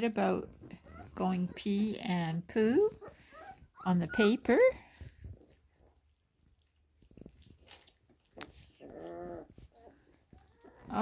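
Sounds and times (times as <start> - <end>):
puppy crying: 2.8 - 4.6, 8.7 - 11.0
puppies eating clicks: 6.2 - 9.0.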